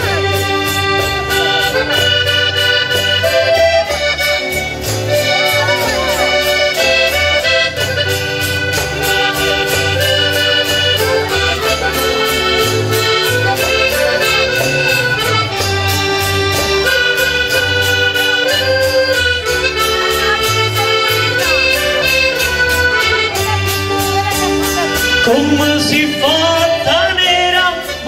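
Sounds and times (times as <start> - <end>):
accordion melody: 0.0 - 28.0
acoustic guitars strumming: 0.0 - 28.0
pulsing bass line: 0.0 - 28.0.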